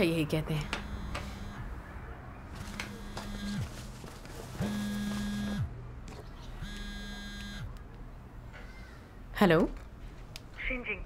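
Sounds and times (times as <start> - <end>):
phone vibrating on wooden table: 0.6 - 1.6, 6.6 - 7.7.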